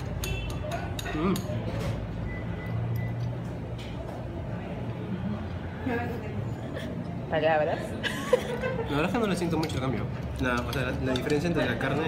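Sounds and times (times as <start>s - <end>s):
metal fork clinking on plate: 0.0s - 1.9s, 9.2s - 12.0s.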